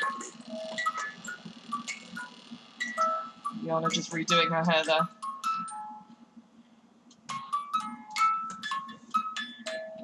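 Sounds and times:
musical toy tinkling tune: 0:00.0 - 0:03.5, 0:04.7 - 0:06.0, 0:07.3 - 0:10.0.

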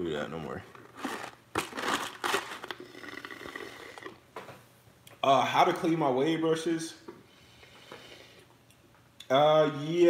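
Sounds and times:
sucking through a straw: 0:02.8 - 0:04.2.

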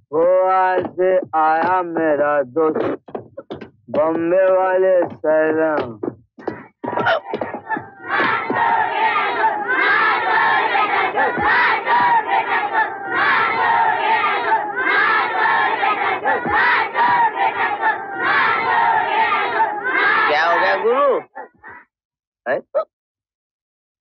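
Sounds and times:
crowd shouting: 0:06.4 - 0:21.8.

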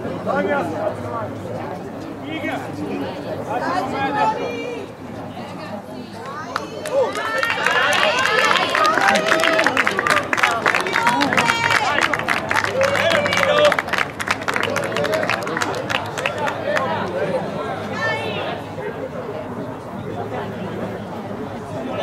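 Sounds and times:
sharp claps: 0:06.2 - 0:16.6
crowd shouting: 0:06.4 - 0:15.6, 0:16.2 - 0:19.0.

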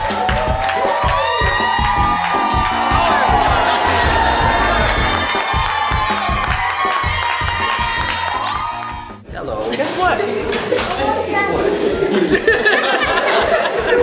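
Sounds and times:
children cheering and shouting: 0:00.0 - 0:09.2
rhythmic clapping: 0:00.0 - 0:09.2
music: 0:00.0 - 0:14.0.

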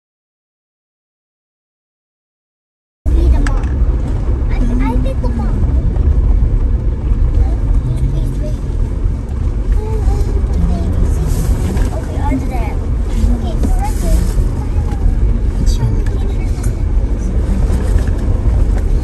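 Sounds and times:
vehicle engine rumble: 0:03.1 - 0:19.0
wind: 0:03.1 - 0:19.0
faint voices: 0:04.4 - 0:06.4, 0:07.2 - 0:09.0, 0:09.6 - 0:19.0.

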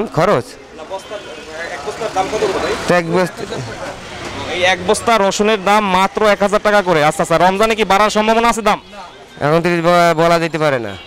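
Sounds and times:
din of indistinct voices: 0:00.0 - 0:11.0
traffic-like noise: 0:00.0 - 0:11.0.

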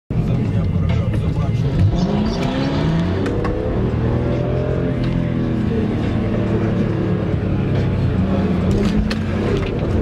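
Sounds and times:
car engine accelerating: 0:00.2 - 0:10.0.

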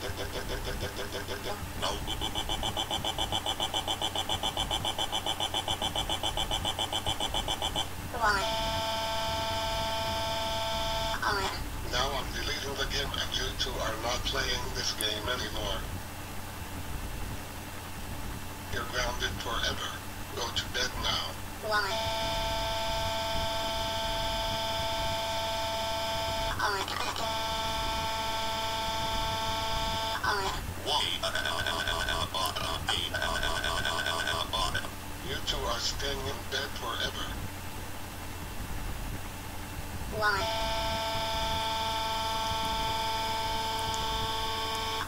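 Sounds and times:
synthesized cartoon voice drone: 0:00.0 - 0:10.2, 0:10.9 - 0:14.6, 0:21.6 - 0:22.3, 0:26.4 - 0:27.6, 0:30.1 - 0:37.3, 0:40.1 - 0:41.9
buzzy electronic tone: 0:00.0 - 0:12.1, 0:21.8 - 0:35.0, 0:40.1 - 0:45.0.

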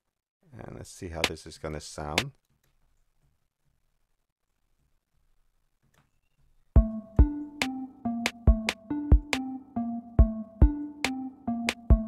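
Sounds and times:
drum machine beat: 0:06.8 - 0:09.6, 0:10.2 - 0:12.0
pitched melody note: 0:06.8 - 0:12.0.

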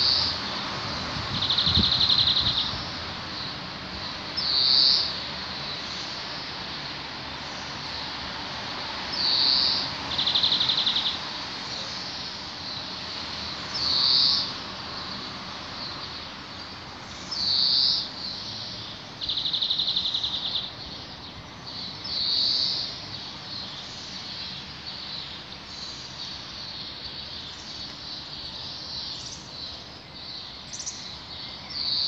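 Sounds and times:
background hiss: 0:00.0 - 0:32.0
songbird singing: 0:00.0 - 0:32.0.

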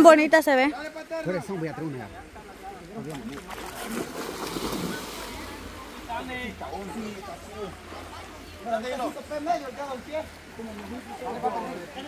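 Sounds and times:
water splashing: 0:02.2 - 0:12.0.

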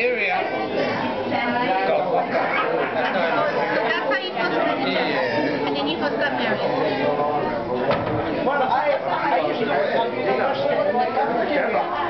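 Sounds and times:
overlapping party chatter: 0:00.0 - 0:12.0.

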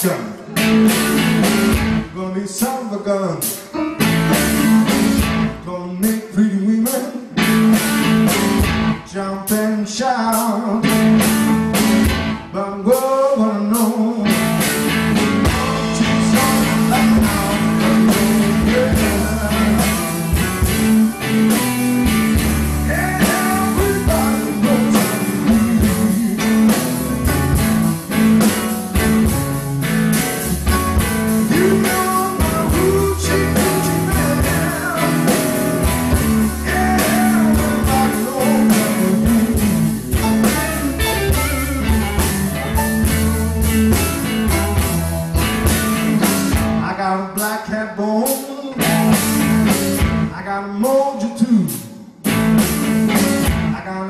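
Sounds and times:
bass and drum groove: 0:00.0 - 0:02.2, 0:03.4 - 0:06.2, 0:06.9 - 0:09.6, 0:10.4 - 0:13.1, 0:13.8 - 0:46.9, 0:48.8 - 0:50.3, 0:51.6 - 0:53.8
blues band playing: 0:00.0 - 0:54.0
bending electric guitar lines: 0:14.3 - 0:47.0.

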